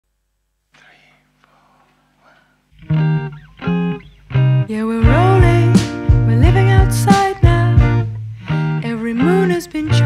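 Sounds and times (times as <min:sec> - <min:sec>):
faint whispered voice: 0:00.7 - 0:02.6.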